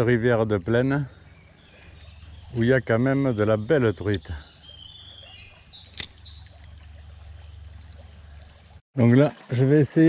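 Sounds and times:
stream trickling: 0.0s - 10.0s
sharp click: 5.9s - 6.2s.

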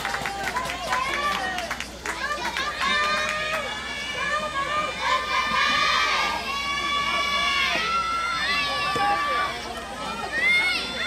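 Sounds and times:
girls shouting cheering calls: 0.3s - 11.0s.

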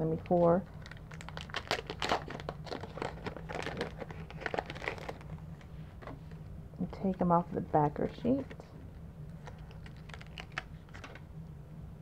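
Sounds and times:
cellophane crinkling and rustling: 0.0s - 7.2s, 7.8s - 11.3s.

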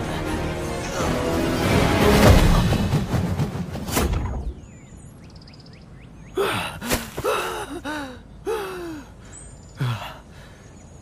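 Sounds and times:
birds chirping faintly: 4.5s - 11.0s
man gasping and groaning: 6.4s - 10.5s.

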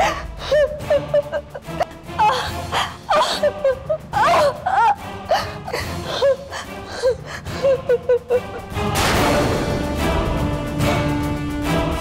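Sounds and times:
woman sobbing: 0.0s - 8.9s
background music: 0.0s - 12.0s
dramatic music: 0.0s - 12.0s.

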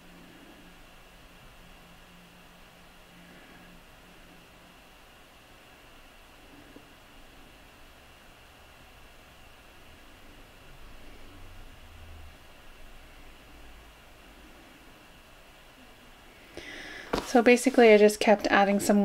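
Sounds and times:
faint room tone hiss: 0.0s - 19.0s.

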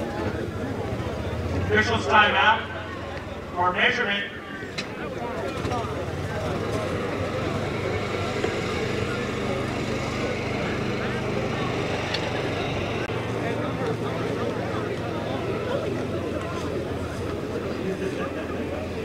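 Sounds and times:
crowd murmur: 0.0s - 19.0s.

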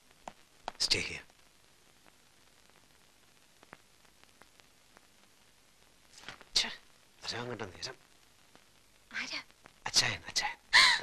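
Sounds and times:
person whispering: 9.1s - 10.6s.

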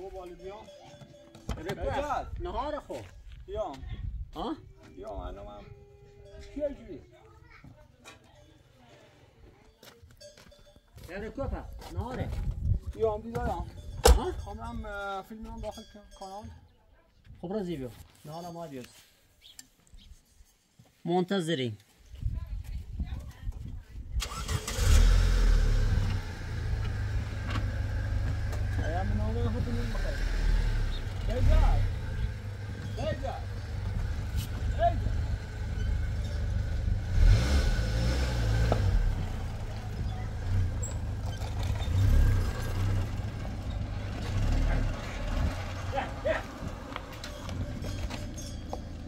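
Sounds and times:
car engine rumble: 24.2s - 49.0s.

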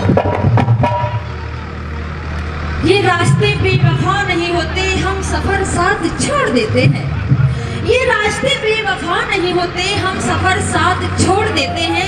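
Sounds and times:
low hum through pa system: 0.0s - 12.0s
woman's amplified singing: 7.8s - 12.0s.

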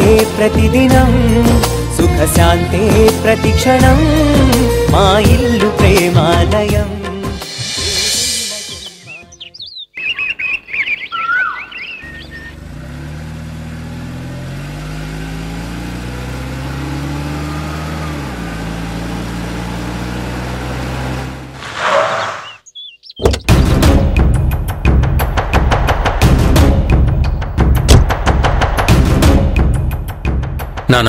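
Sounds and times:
birds chirping: 7.8s - 13.0s, 21.8s - 23.9s
car engine running: 11.9s - 21.7s.

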